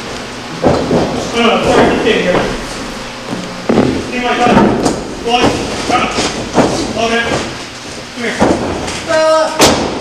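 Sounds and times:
sudden thump: 0.6 - 7.7.

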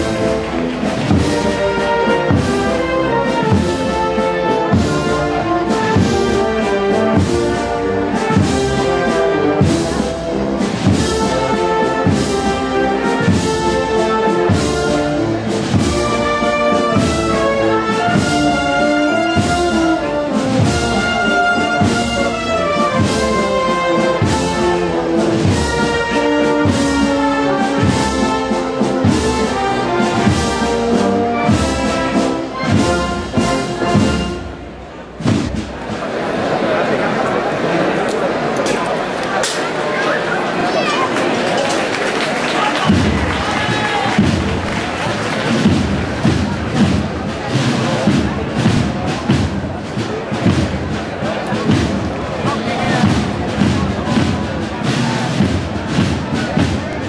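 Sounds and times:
steady drum beat: 0.0 - 37.6, 40.8 - 57.0
brass band playing march: 0.0 - 57.0.

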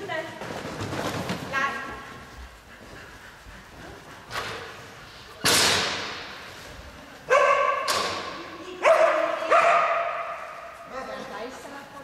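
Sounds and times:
dog barking in echoing hall: 7.2 - 11.4.

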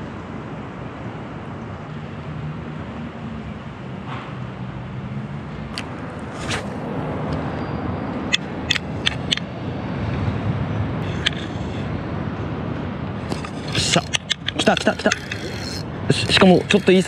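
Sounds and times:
road traffic rumble: 0.0 - 17.0.

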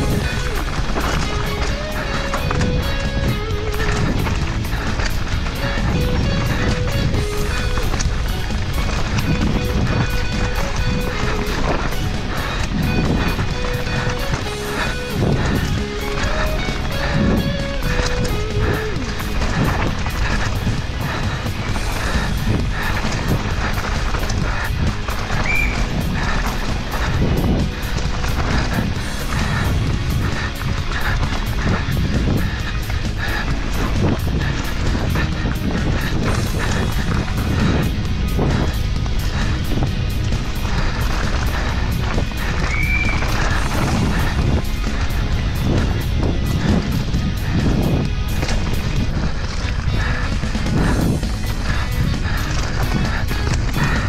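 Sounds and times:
background music: 0.0 - 54.0
bike knocking over bumps: 0.0 - 54.0
bike tyres on loose ground: 0.0 - 54.0
wind on microphone: 0.0 - 54.0.

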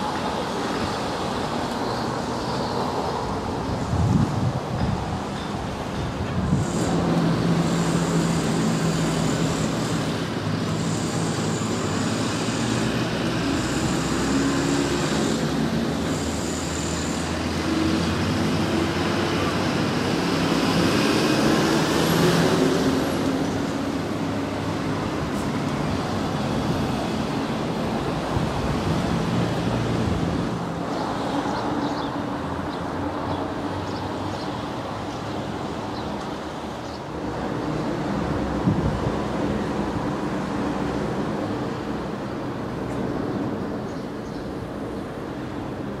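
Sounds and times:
traffic noise with engine hum: 0.0 - 46.0.

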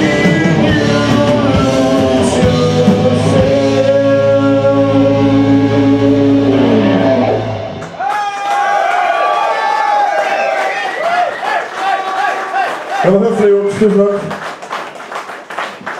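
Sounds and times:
audience cheering and shouting: 6.8 - 13.7.

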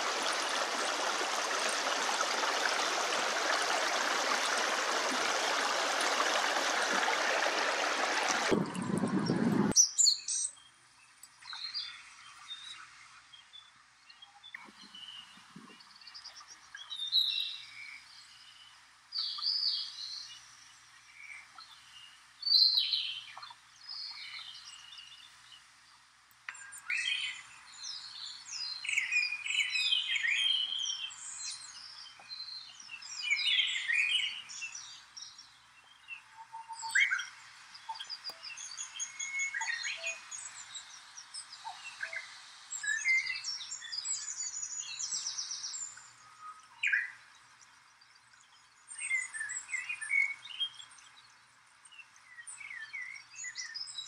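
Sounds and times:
faint steady hiss: 0.0 - 54.0
songbirds chirping and trilling: 0.0 - 54.0.

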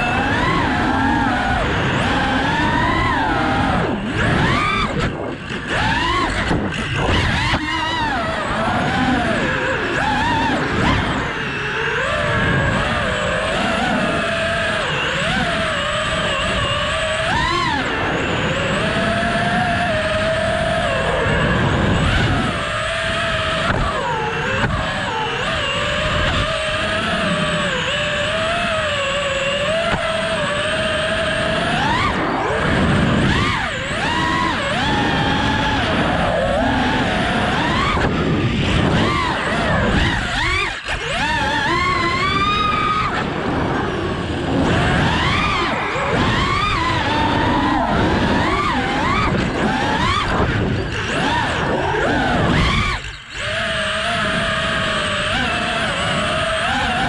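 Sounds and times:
quadcopter motors whining: 0.0 - 57.0.

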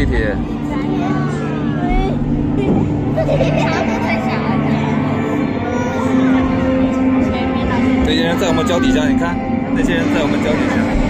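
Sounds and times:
low droning soundtrack: 0.0 - 11.0.

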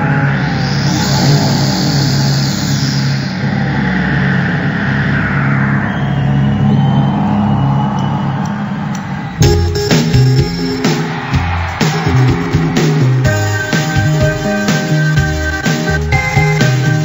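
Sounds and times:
noisy whoosh sweeping: 0.0 - 7.0
synthesizer drone: 0.0 - 17.0.

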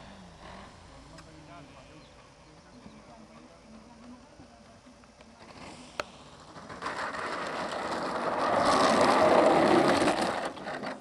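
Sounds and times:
wheels rattling on asphalt: 0.0 - 11.0
model airplane motor: 6.4 - 11.0.

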